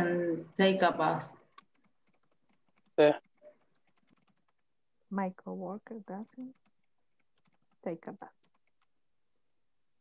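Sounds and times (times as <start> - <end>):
faint keyboard typing: 1.3 - 9.0.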